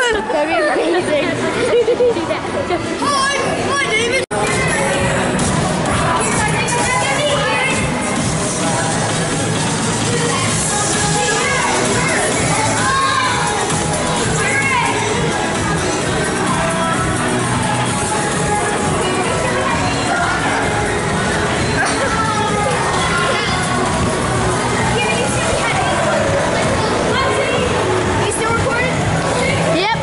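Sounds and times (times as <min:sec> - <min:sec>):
children chattering: 0:00.0 - 0:30.0
music: 0:03.1 - 0:30.0.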